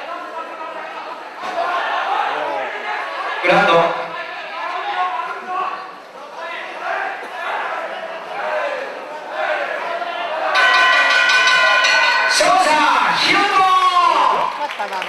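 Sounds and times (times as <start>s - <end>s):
crowd shouting: 0.0s - 14.9s
ring bell ringing: 10.6s - 13.6s.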